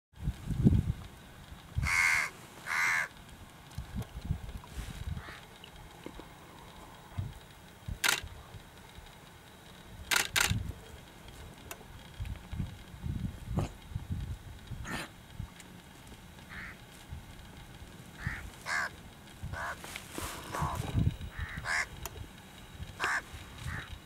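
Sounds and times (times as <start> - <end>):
harsh caw-like bird calls: 1.8 - 3.2, 5.2 - 5.5, 16.5 - 16.8, 18.2 - 22.0, 23.0 - 24.0
sharp clicks: 5.6 - 10.7.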